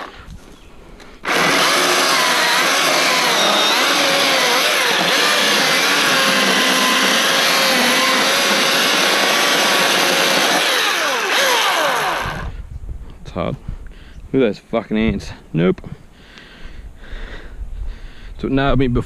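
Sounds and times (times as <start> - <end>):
electric chainsaw cutting log: 1.2 - 12.5.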